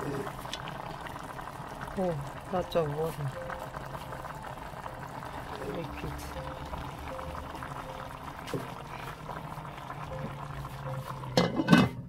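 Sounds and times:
pot simmering with soft bubbling: 0.0s - 12.0s.

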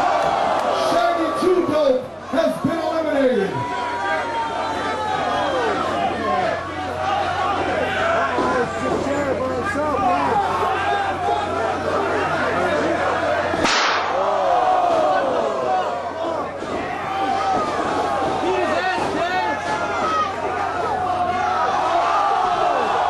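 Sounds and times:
crowd shouting and cheering: 0.0s - 23.0s
sharp crack: 13.6s - 14.4s.

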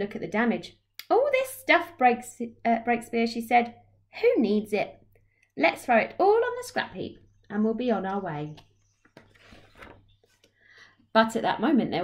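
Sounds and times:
paper page turning: 9.0s - 10.5s.

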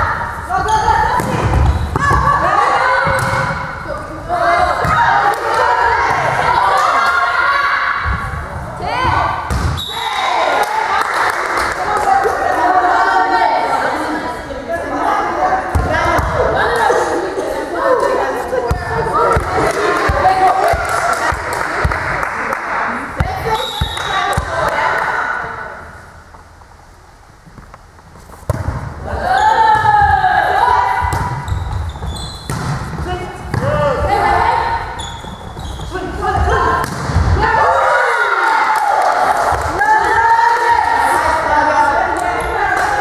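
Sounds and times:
volleyball thuds: 3.0s - 3.7s, 9.0s - 9.8s, 28.4s - 29.1s, 31.0s - 34.2s, 35.4s - 37.4s.

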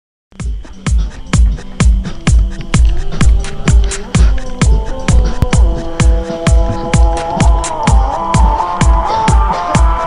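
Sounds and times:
electronic beat music: 0.3s - 10.0s.

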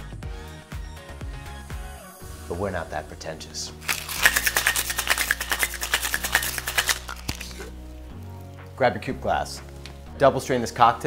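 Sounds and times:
ice rattling in metal shaker: 3.8s - 7.8s
metal tins knocking: 3.9s - 7.6s.

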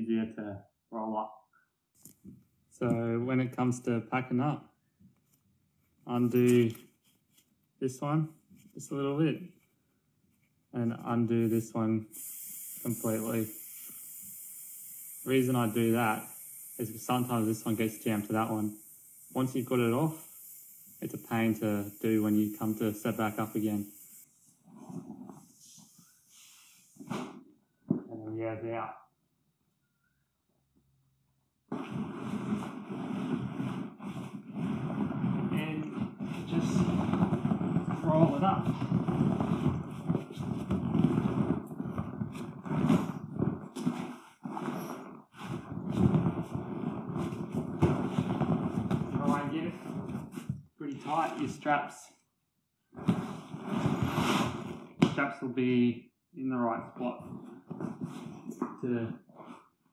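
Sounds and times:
canvas swag rasping and rustling: 31.7s - 51.4s, 53.0s - 54.8s.

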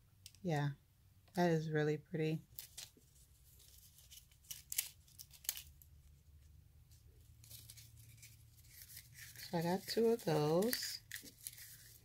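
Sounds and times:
foil crinkling: 2.5s - 5.9s, 7.3s - 12.0s.

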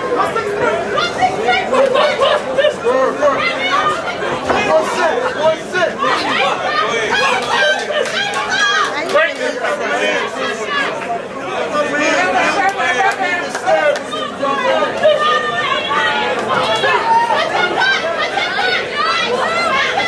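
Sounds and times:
spectators talking and shouting: 0.0s - 20.0s.

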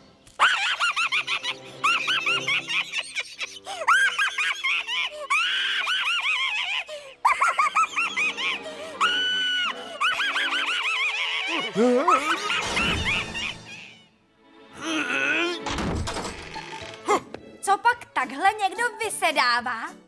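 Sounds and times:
background music: 0.0s - 20.0s
cartoon squeals and giggles: 0.4s - 14.1s.

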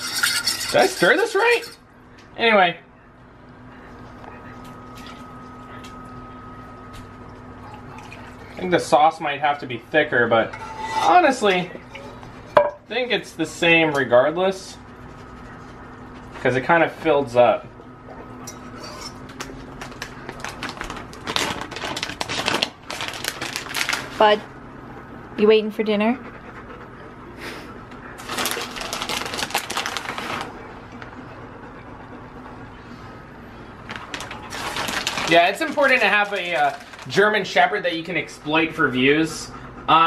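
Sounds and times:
metal spoon scraping saucepan: 0.0s - 1.8s, 10.4s - 12.1s, 18.5s - 19.2s
steady hum: 0.0s - 40.0s.

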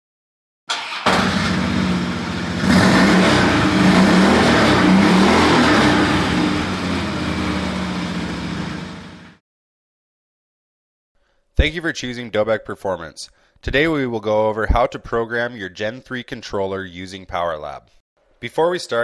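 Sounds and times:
motor engine revving: 0.7s - 9.4s.

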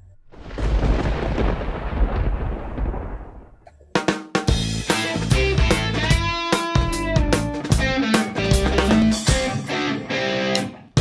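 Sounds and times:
thunder crash and rumble: 0.2s - 3.6s.

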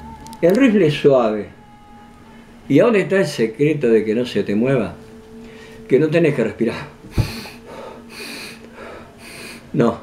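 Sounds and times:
man breathing: 5.4s - 5.8s, 7.1s - 9.7s
dull thump: 7.0s - 7.6s.

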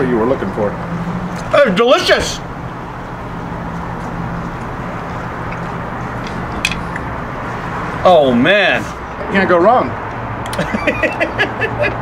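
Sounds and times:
constant low hum: 0.0s - 12.0s
traffic noise: 0.0s - 12.0s.

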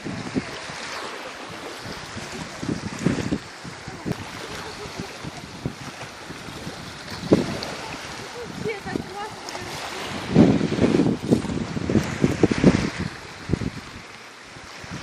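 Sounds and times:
small waves washing on shore: 0.0s - 15.0s
wind buffeting microphone: 0.0s - 15.0s.

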